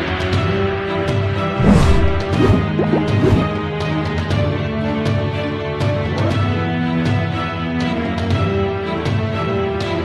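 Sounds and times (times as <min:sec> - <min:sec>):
crash-like transition hits: 0:01.6 - 0:03.5.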